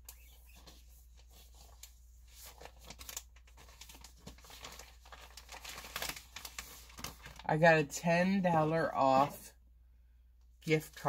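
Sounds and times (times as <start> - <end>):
plastic bag crinkling: 0.2 - 7.6.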